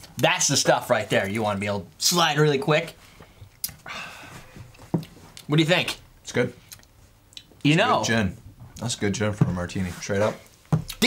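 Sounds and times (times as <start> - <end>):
breathy exhale: 3.1 - 4.7.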